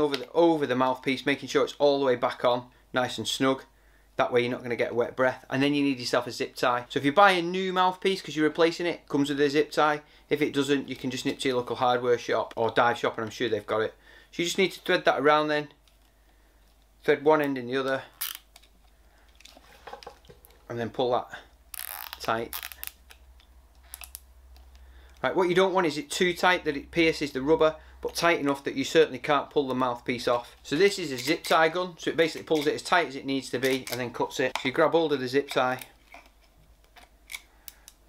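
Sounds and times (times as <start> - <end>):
zip tie clicks and rubs: 21.7 - 24.8.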